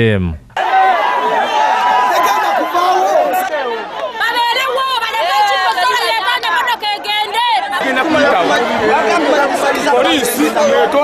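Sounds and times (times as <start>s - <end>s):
crowd talking and shouting: 0.6s - 11.0s.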